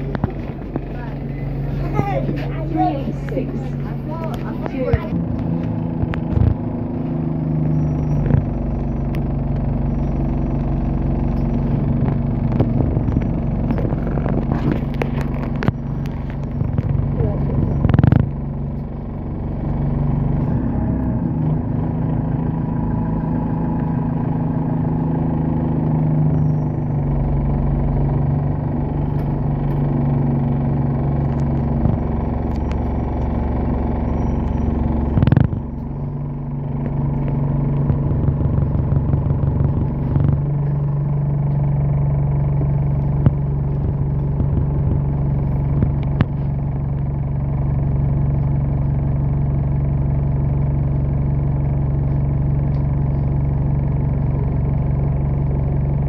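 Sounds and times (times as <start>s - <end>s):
bus engine humming and whining: 0.0s - 56.0s.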